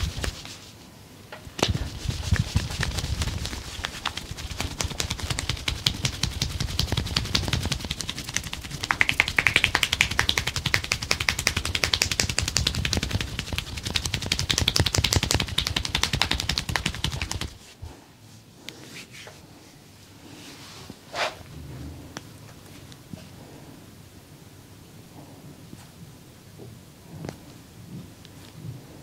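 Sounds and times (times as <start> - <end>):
hands slapping skin: 0.0 - 0.6, 1.5 - 17.6.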